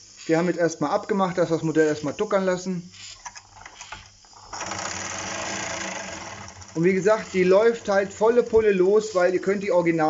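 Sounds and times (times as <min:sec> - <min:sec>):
toy steam engine rattling: 0:03.4 - 0:08.7.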